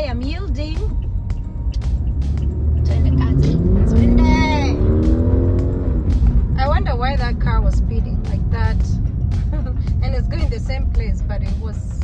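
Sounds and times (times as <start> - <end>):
car engine accelerating: 0.0 - 12.0
road rumble in car cabin: 0.0 - 12.0.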